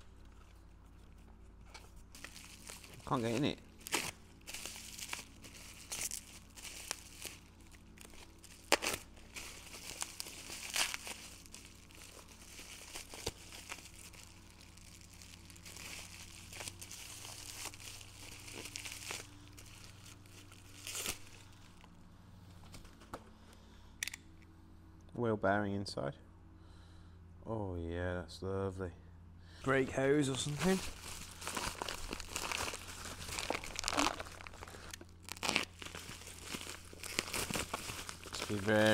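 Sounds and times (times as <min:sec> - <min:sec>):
plastic packaging crinkling and tearing: 0:01.8 - 0:21.8, 0:29.7 - 0:38.9.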